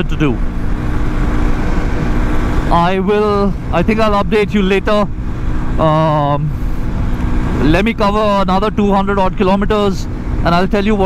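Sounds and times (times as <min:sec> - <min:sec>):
wind rushing over microphone: 0:00.0 - 0:05.9
motorcycle engine cruising: 0:00.0 - 0:11.0.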